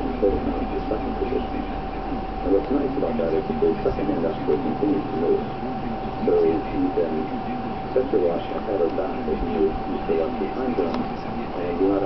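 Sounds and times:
muffled speech from a video: 0.0 - 12.0
steady high hum: 0.0 - 12.0.

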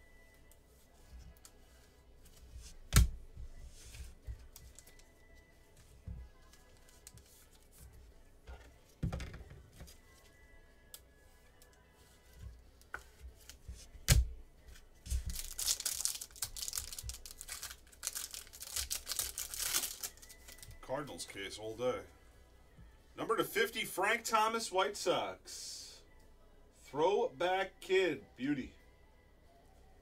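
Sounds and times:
wrapping crackling and tearing: 15.2 - 20.8.

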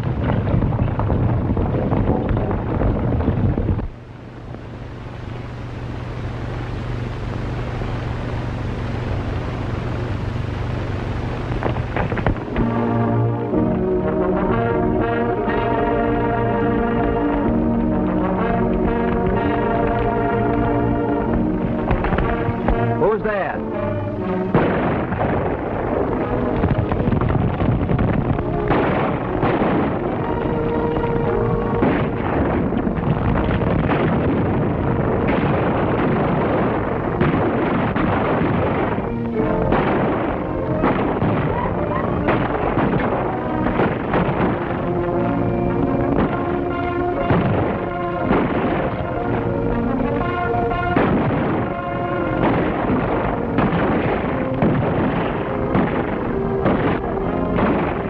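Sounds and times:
galloping horses: 0.0 - 4.0, 31.5 - 45.0
film score music: 0.0 - 58.0
low hum: 0.0 - 58.0
gunshots: 11.6 - 58.0.

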